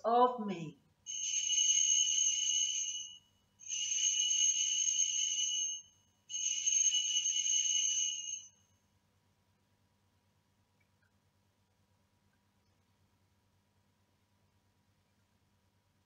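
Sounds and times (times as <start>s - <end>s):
bells jingling: 1.1s - 8.4s.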